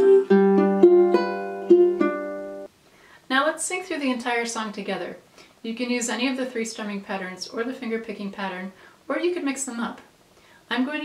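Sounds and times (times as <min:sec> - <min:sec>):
ukulele fingerpicked: 0:00.0 - 0:02.7.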